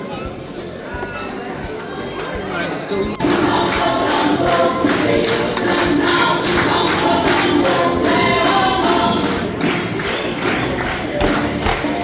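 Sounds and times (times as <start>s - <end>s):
music: 0.0s - 12.0s
many voices singing: 1.8s - 12.0s.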